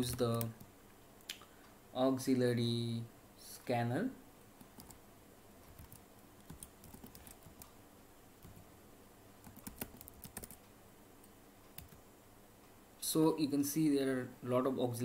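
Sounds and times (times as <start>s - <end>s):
faint keyboard typing: 0.0s - 0.7s, 4.6s - 5.0s, 5.6s - 7.8s, 8.4s - 8.7s, 9.4s - 12.1s.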